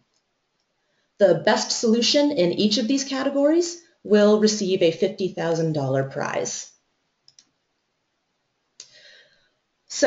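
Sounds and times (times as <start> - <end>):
faint clicks: 7.2 - 7.9.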